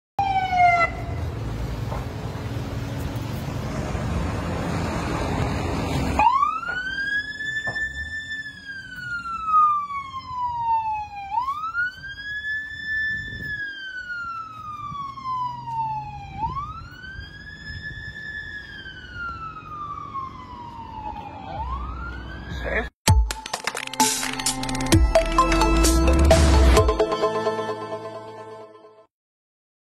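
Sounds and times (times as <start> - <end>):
ambulance siren wailing: 0.2 - 1.3, 5.7 - 22.9.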